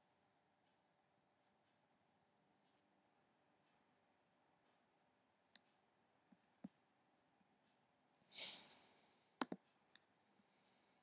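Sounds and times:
computer mouse clicks: 9.4 - 10.1.

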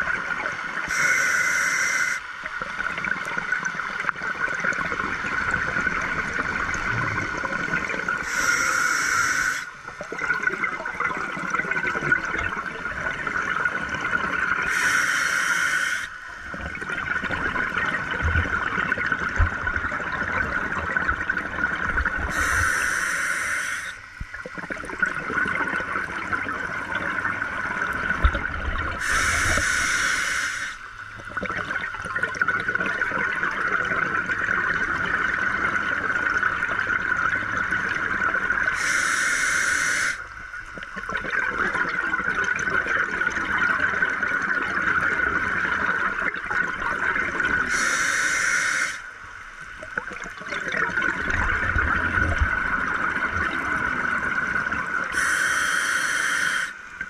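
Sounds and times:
hissing regulator inhale: 0.9 - 2.2, 8.2 - 9.7, 14.7 - 16.2, 22.3 - 24.0, 29.0 - 30.9, 38.8 - 40.3, 47.7 - 49.1, 55.1 - 56.8
bubbling exhale: 28.9 - 30.8, 55.1 - 56.8.

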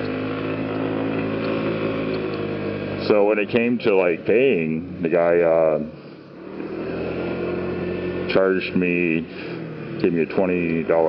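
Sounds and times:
road and wind noise: 0.0 - 11.0
scooter engine running: 0.0 - 11.0.

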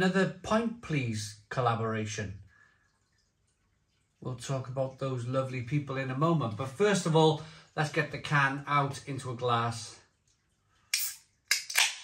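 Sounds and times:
can ring-pull cracking open: 11.0 - 12.0.

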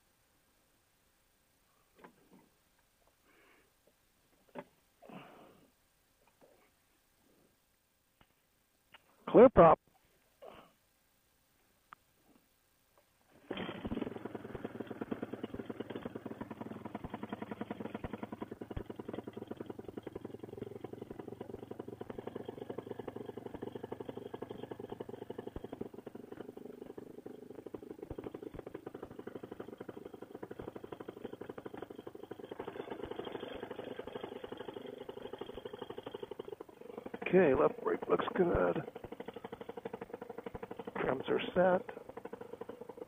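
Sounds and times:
paramotor engine idling: 13.4 - 43.0.

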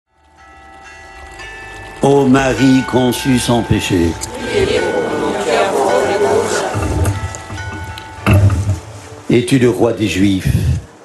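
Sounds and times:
church bells ringing: 0.1 - 10.4.

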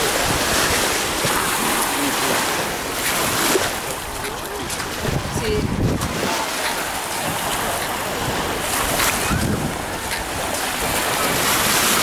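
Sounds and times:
waves washing on shore: 0.0 - 12.0
wind buffeting microphone: 0.0 - 12.0.

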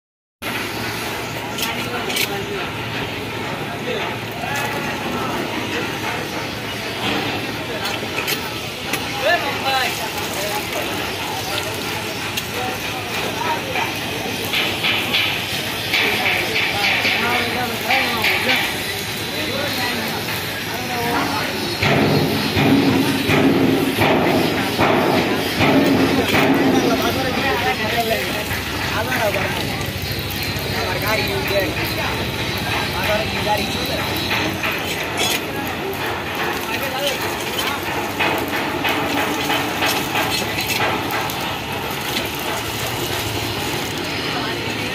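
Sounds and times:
steady background noise: 0.4 - 44.9
people talking indistinctly: 1.1 - 44.9.

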